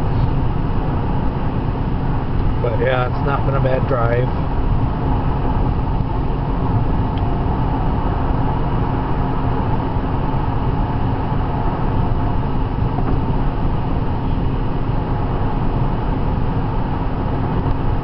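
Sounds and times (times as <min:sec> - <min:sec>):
car cabin road noise: 0:00.0 - 0:18.0.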